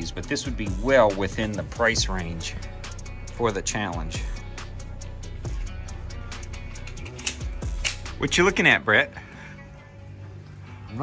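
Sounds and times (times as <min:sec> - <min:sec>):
background music: 0:00.0 - 0:11.0
sharp clicking accents: 0:06.7 - 0:08.2.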